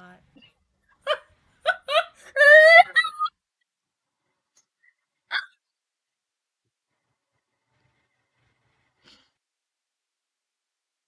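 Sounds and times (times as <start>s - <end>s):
person hiccup-like vocal sound: 5.3s - 5.6s.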